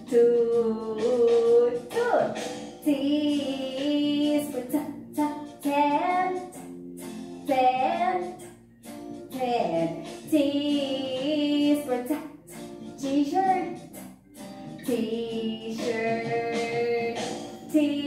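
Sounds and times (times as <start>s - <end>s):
musical backing: 0.0s - 18.0s
voices singing: 14.8s - 18.0s.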